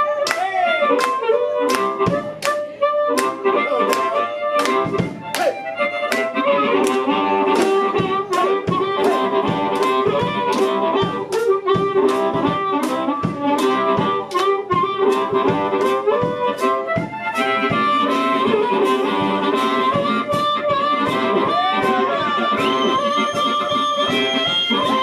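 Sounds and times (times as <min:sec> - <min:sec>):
amplified harmonica: 0:00.0 - 0:25.0
blues band playing: 0:00.0 - 0:25.0.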